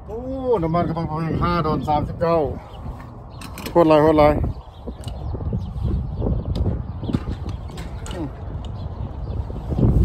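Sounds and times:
wind buffeting microphone: 0:00.0 - 0:10.0
handling knocks and clicks: 0:03.4 - 0:03.9, 0:06.5 - 0:08.8.

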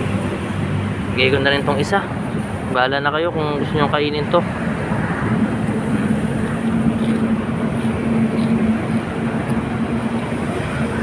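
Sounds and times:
mechanical engine rumble: 0:00.0 - 0:11.0.

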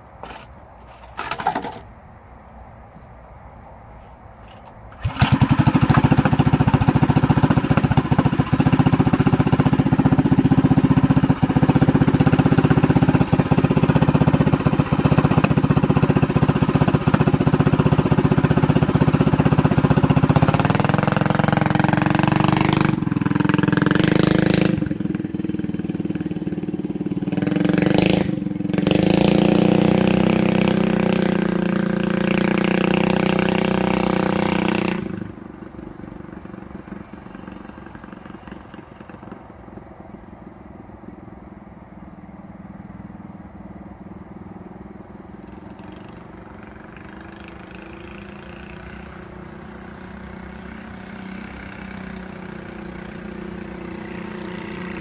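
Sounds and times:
mini bike engine running: 0:04.9 - 0:39.5, 0:45.3 - 0:55.0.

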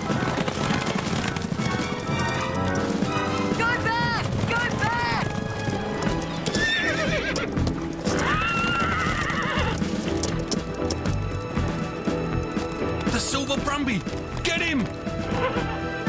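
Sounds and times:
horses whinnying: 0:00.0 - 0:11.9, 0:15.2 - 0:16.0
galloping hooves clatter: 0:00.0 - 0:16.0
music: 0:00.0 - 0:16.0.

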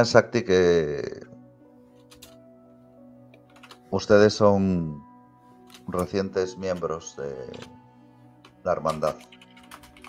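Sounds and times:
quiet music of held tones: 0:00.0 - 0:10.0
computer keyboard clicks: 0:02.1 - 0:02.4, 0:03.4 - 0:03.8, 0:08.4 - 0:10.0.

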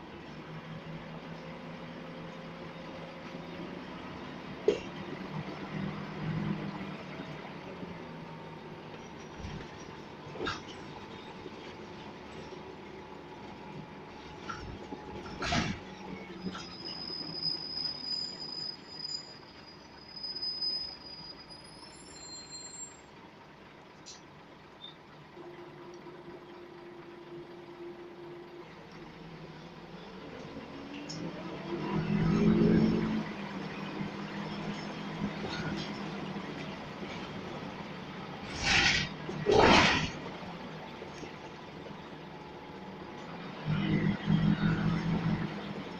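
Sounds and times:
bus diesel engine hum: 0:00.0 - 0:45.9
road noise: 0:00.0 - 0:45.9
high-pitched squeal: 0:15.4 - 0:23.1.

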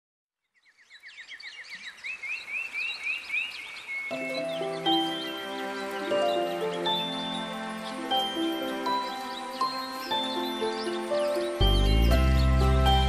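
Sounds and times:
birds chirping: 0:00.4 - 0:13.0
soft instrumental lullaby music: 0:04.1 - 0:13.0.

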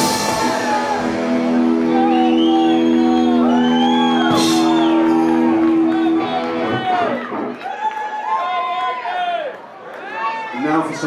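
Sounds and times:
electric guitar and bass chord ringing: 0:00.0 - 0:07.2
crowd whooping and shouting: 0:00.0 - 0:11.0.

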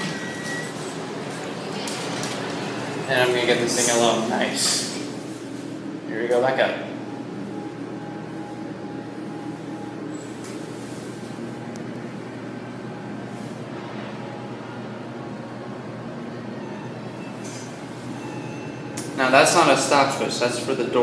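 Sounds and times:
elevator hum and rumble: 0:00.0 - 0:21.0.

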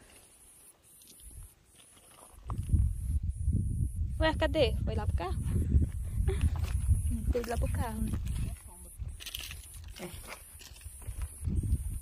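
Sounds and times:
wind buffeting microphone: 0:02.4 - 0:09.9, 0:10.7 - 0:12.0.

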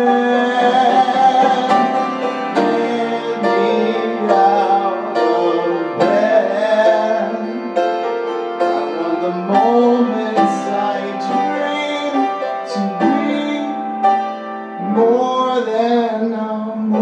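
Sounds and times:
man singing long notes: 0:00.0 - 0:14.1, 0:14.8 - 0:17.0
upright piano chords: 0:00.0 - 0:17.0.

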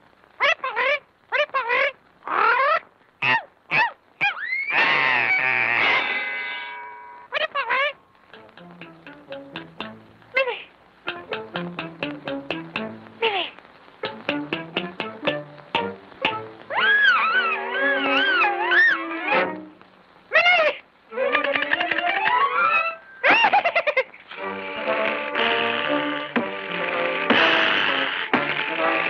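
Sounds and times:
squeaky sliding cries: 0:03.8 - 0:08.0, 0:16.7 - 0:19.6
orchestral music with plucked notes: 0:08.3 - 0:10.3, 0:11.0 - 0:13.2, 0:14.0 - 0:16.7, 0:17.5 - 0:19.9, 0:21.1 - 0:23.2, 0:24.3 - 0:29.0
loud long held cry: 0:16.7 - 0:19.5.

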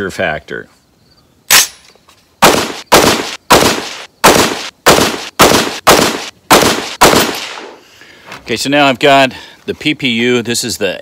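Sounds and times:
rifle shots: 0:02.4 - 0:07.8.

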